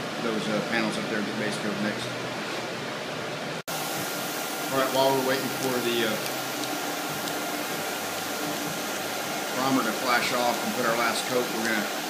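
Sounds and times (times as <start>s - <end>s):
ventilation fans rushing air: 0.0s - 12.0s.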